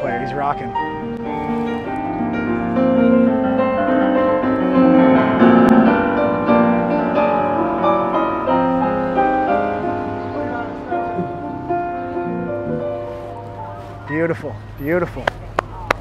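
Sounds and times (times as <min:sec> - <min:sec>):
jazz band playing: 0:00.0 - 0:15.8
electric keyboard chords: 0:00.0 - 0:16.0.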